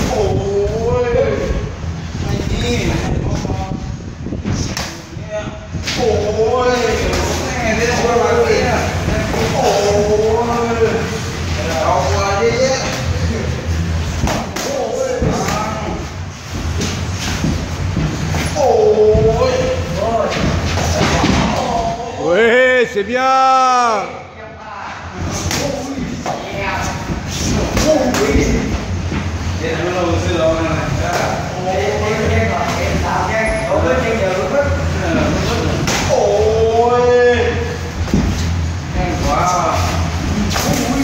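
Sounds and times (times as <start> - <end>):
man shouting: 21.8 - 24.3.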